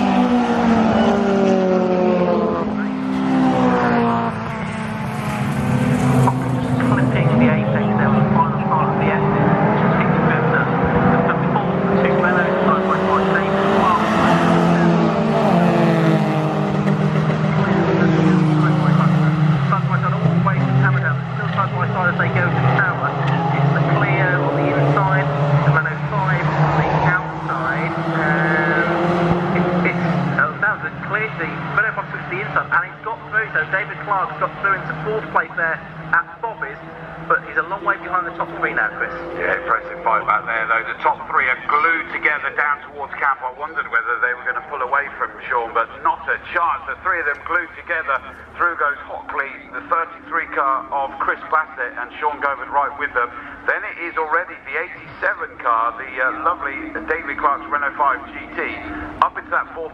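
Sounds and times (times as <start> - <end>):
racing car engines passing: 0.0 - 59.9.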